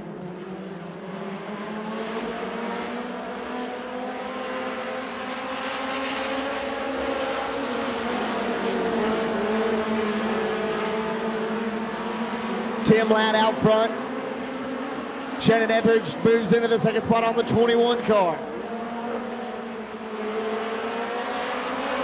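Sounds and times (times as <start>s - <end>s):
race car engines running: 0.0s - 22.0s.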